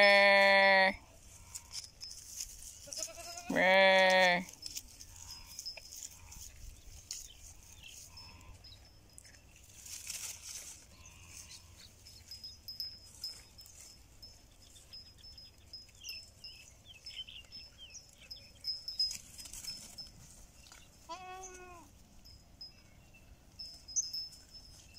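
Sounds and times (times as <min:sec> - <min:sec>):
goat bleat: 0:00.0 - 0:01.6, 0:02.8 - 0:04.5, 0:21.0 - 0:21.9
faint rustles and clicks: 0:01.1 - 0:22.8.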